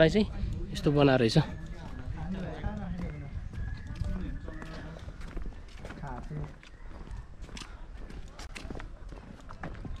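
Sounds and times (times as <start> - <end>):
footsteps on dry grass: 1.8 - 10.0.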